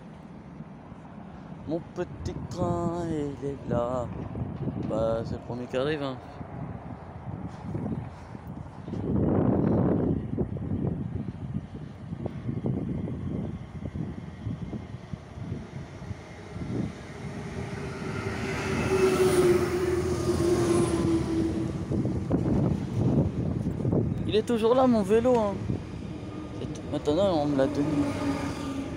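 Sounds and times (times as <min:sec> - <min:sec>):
wind buffeting microphone: 0:00.0 - 0:28.9
electric train pulling in: 0:12.4 - 0:24.1, 0:25.0 - 0:28.9.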